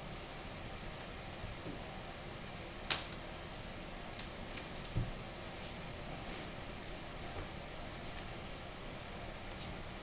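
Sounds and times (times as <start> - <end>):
low hiss of room tone: 0.0 - 10.0.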